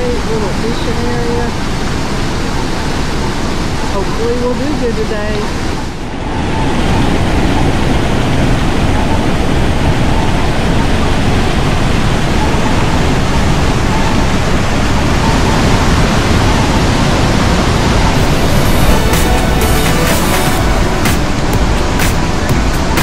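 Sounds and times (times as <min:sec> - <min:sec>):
water rushing over spillway: 0:00.0 - 0:23.0.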